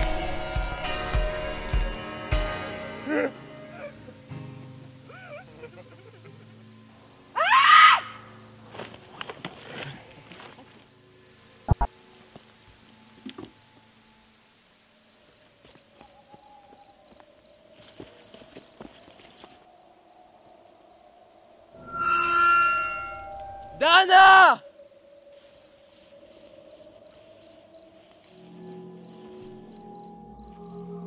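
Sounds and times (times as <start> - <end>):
loud high cry: 7.4 - 8.2, 22.1 - 24.6.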